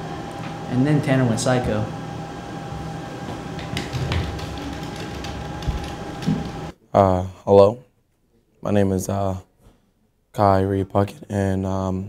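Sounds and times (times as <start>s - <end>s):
thin steady whine: 0.0s - 6.7s
mechanical room hum: 0.0s - 9.5s.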